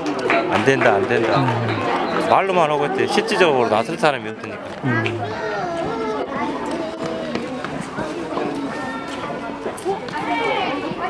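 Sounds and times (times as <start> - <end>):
people talking indistinctly: 0.5 - 11.0.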